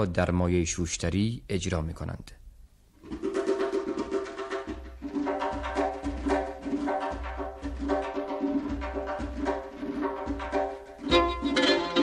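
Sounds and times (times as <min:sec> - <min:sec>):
plucked string instrument: 0:03.0 - 0:12.0.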